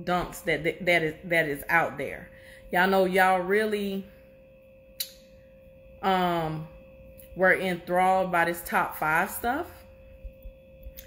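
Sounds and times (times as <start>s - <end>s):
faint background tone: 0.0s - 11.0s.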